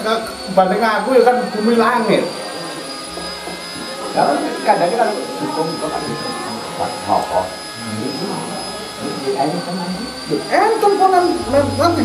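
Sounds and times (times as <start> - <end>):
faint high whine: 0.0 - 12.0
men talking: 0.0 - 12.0
background hum: 11.3 - 12.0.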